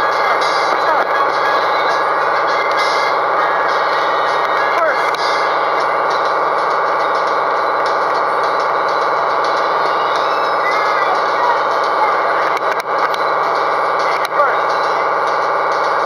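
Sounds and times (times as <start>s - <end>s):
steady mechanical drone: 0.0s - 16.0s.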